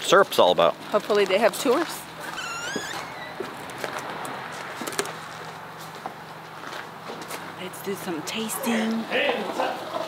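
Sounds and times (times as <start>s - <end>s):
outdoor noise: 0.0s - 10.0s
high wavering squeak-like call: 2.2s - 3.4s.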